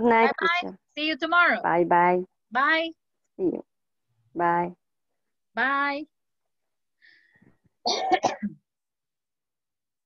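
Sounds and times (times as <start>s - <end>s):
person coughing: 7.9s - 8.6s.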